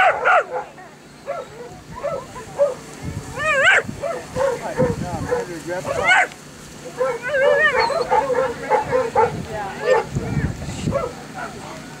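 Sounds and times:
dog yipping and whining: 0.0 - 2.8, 3.4 - 6.3, 7.0 - 11.1.

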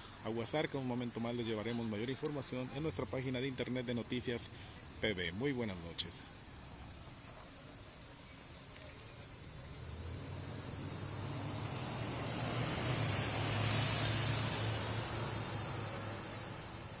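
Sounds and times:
vehicle driving past: 9.5 - 17.0.

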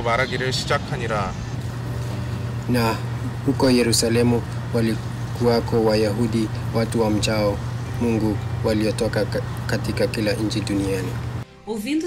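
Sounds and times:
low hum: 0.0 - 11.4
man reading aloud: 2.7 - 11.3.

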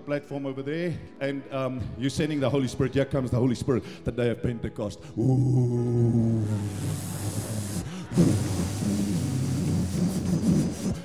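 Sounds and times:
man making low rumbling sound: 5.2 - 9.4.

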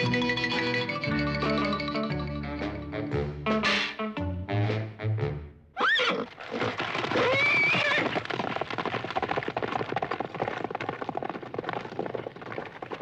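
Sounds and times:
horse whinnying: 5.8 - 8.2
hooves clattering: 6.2 - 13.0.

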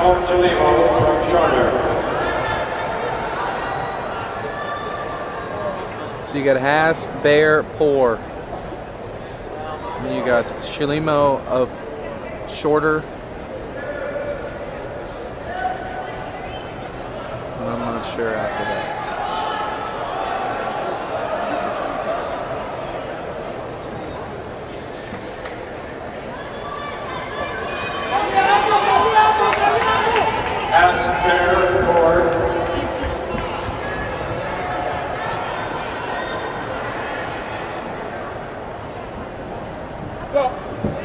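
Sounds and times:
spectators shouting and cheering: 0.0 - 6.2, 17.3 - 23.6, 25.4 - 38.8
crowd voices echoing: 0.0 - 41.0.

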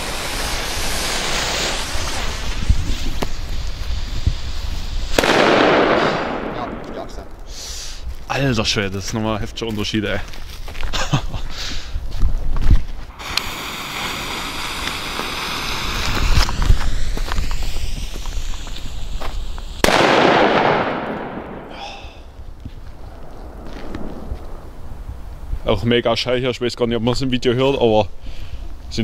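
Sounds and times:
fuse hissing: 0.0 - 8.1, 13.1 - 19.8
firecracker bang: 5.0 - 7.6, 13.2 - 25.2
low thumps: 22.5 - 25.6.

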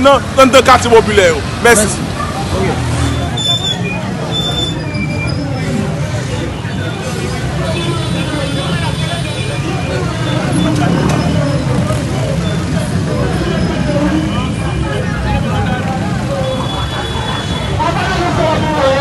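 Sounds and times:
low rumble of street noise: 0.0 - 19.0
many people talking: 0.0 - 19.0.

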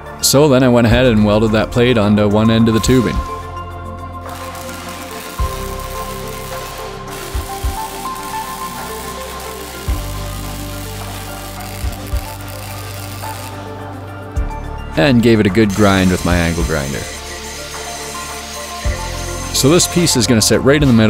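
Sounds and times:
background music with bass beat: 0.9 - 21.0
welder arc crackling: 2.8 - 3.4, 4.2 - 14.0, 15.4 - 20.2.

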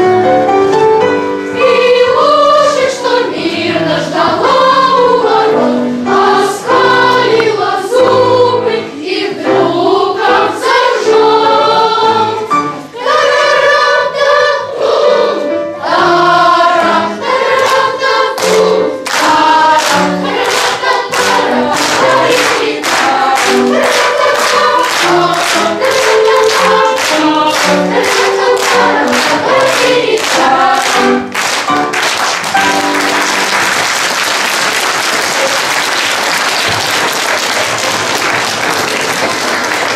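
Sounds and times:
boys' choir singing: 1.5 - 31.3
rhythmic clapping: 6.2 - 9.2, 16.4 - 39.9
applause: 19.1 - 39.9.

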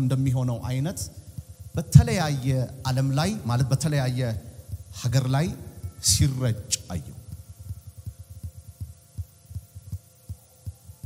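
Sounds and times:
faint steady hum: 0.0 - 11.0
soft low thumps: 0.7 - 11.0.

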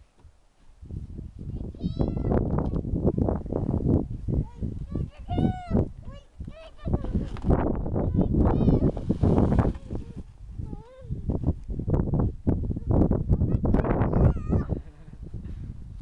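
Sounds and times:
child squealing and calling: 8.5 - 9.0, 14.0 - 14.8.

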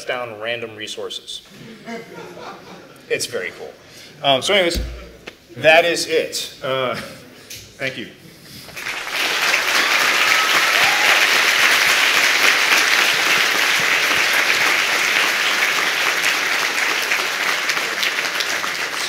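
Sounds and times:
audience applauding: 8.7 - 19.0.

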